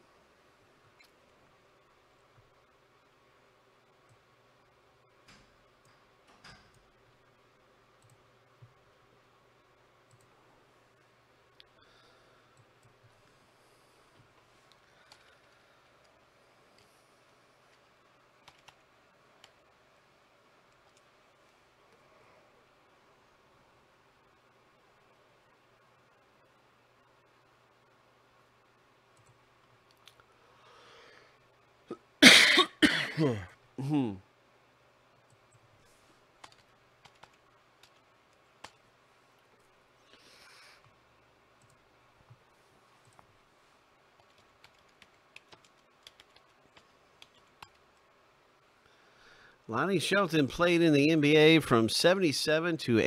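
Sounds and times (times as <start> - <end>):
soft scattered clicks: 0.8 - 13.4, 14.1 - 19.8, 20.4 - 22.0, 23.4 - 30.4, 35.1 - 49.0
man coughing: 31.9 - 34.2.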